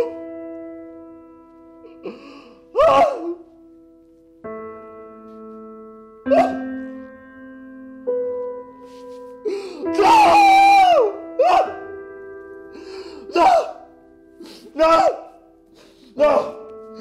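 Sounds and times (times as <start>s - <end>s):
sustained keyboard music: 0.0s - 17.0s
person wailing and sobbing: 1.9s - 3.5s, 6.3s - 6.7s, 9.5s - 11.8s, 13.2s - 15.4s, 16.0s - 17.0s.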